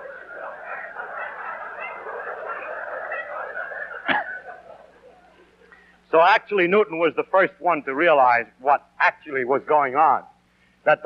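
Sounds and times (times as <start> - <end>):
audience laughing: 0.0 - 5.9.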